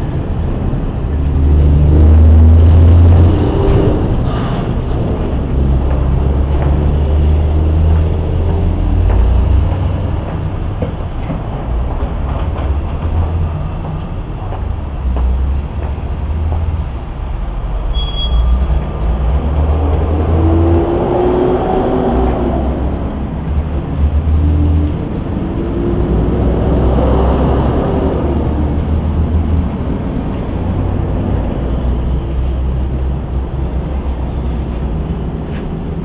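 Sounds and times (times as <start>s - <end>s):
traffic low rumble: 0.0s - 36.0s
vehicles passing: 0.0s - 36.0s.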